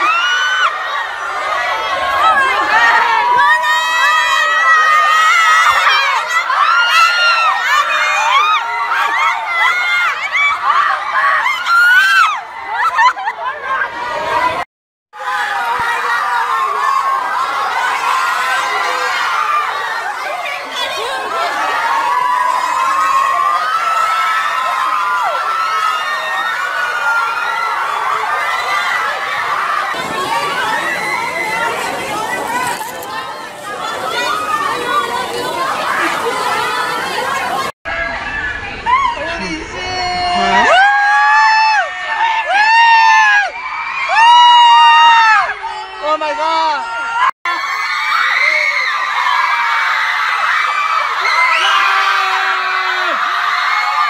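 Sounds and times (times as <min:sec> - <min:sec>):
crowd of fans screaming and cheering: 0:00.0 - 0:14.6, 0:15.2 - 0:54.0.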